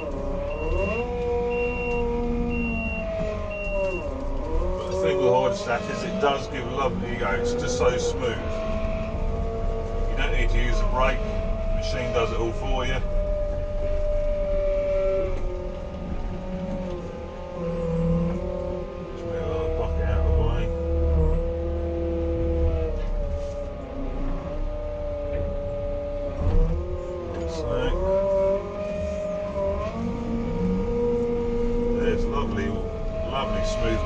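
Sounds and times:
telehandler engine whining: 0.0 - 34.0.

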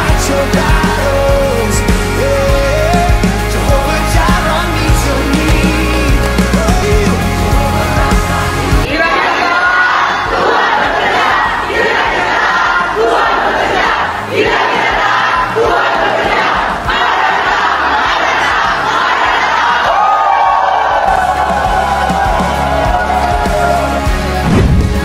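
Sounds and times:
crowd shouting and cheering: 0.0 - 25.0
music playing: 0.0 - 25.0.

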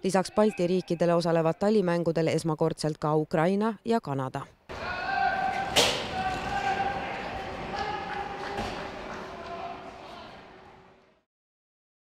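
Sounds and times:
players chattering: 4.7 - 11.2.

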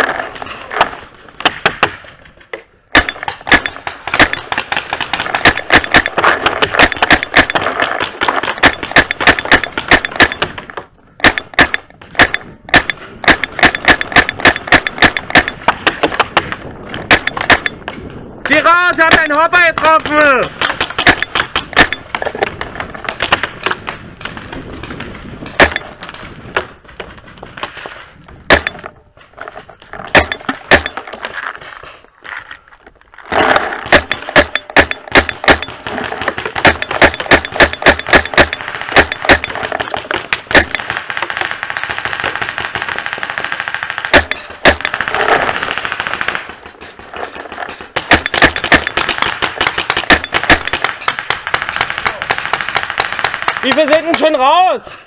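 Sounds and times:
paintball markers firing: 2.9 - 28.9, 33.3 - 54.7.

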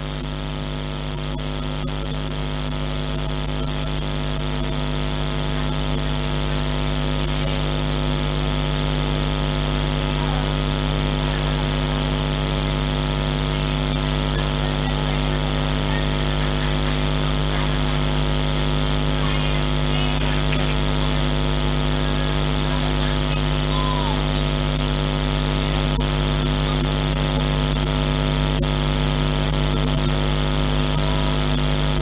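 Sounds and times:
electrical hum and buzz: 0.0 - 32.0
faint voices: 0.0 - 32.0.

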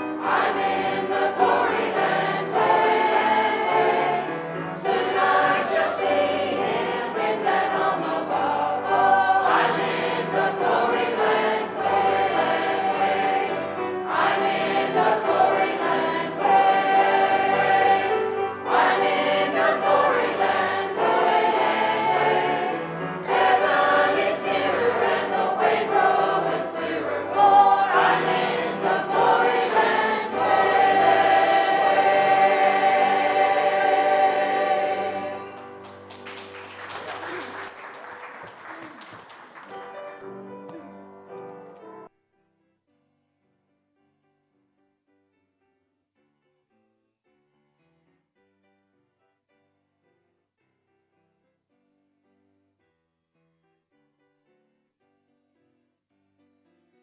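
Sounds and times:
choir singing a hymn: 0.0 - 36.0.

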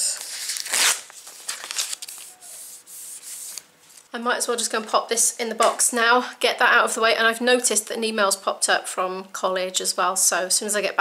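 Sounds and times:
paper rustling and rubbing: 0.1 - 4.1.

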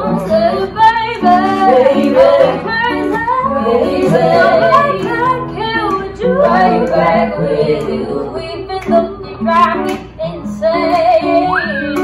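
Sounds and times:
acoustic guitar: 0.0 - 12.0
group of voices singing: 0.0 - 12.0.

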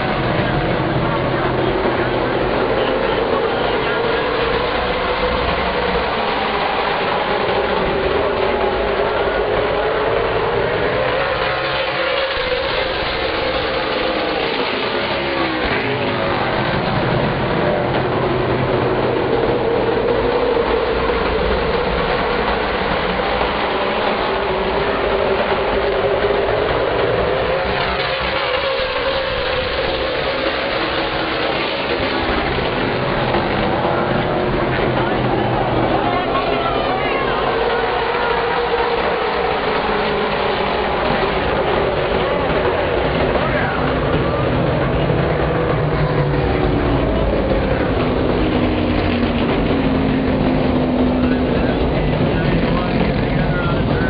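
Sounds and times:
race car engines droning: 0.0 - 54.0.

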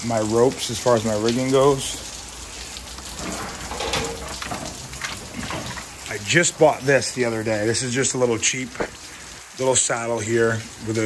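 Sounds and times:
climbing gear rustling in plastic bucket: 2.9 - 6.4.

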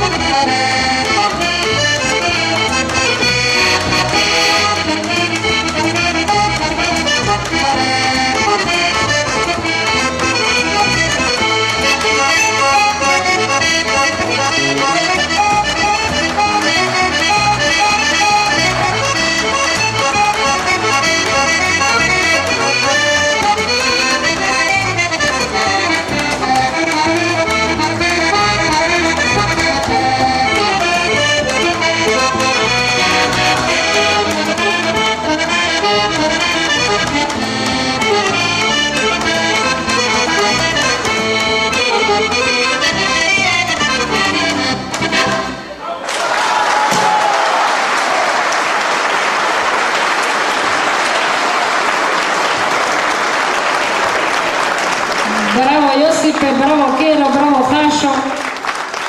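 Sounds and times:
piano accordion melody: 0.0 - 45.8, 52.0 - 59.0.

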